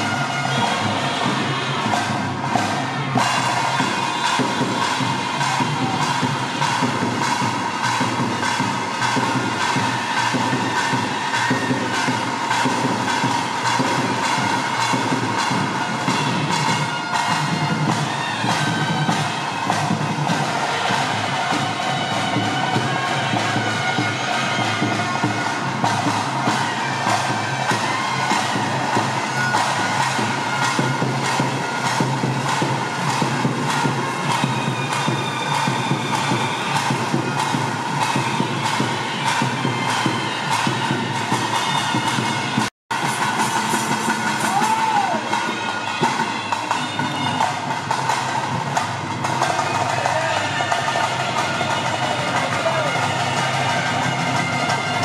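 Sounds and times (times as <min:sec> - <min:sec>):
fast steady drumming: 0:00.0 - 0:55.0.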